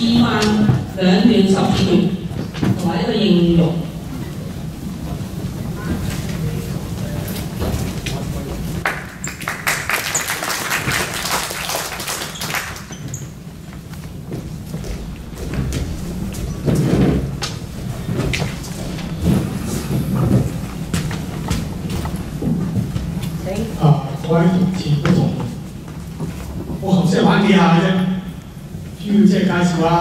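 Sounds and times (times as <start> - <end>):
dense crackling noise: 0.0 - 30.0
footwork thuds and stamps: 14.1 - 23.2.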